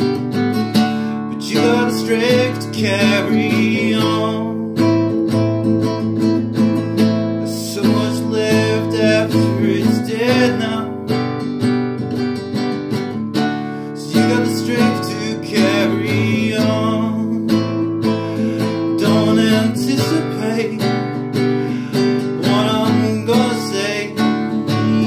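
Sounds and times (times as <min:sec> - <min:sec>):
acoustic guitar strumming chords: 0:00.0 - 0:25.0.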